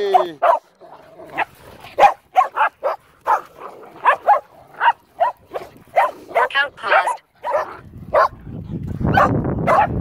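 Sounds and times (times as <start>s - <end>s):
dogs barking: 0.0s - 8.4s, 9.1s - 10.0s.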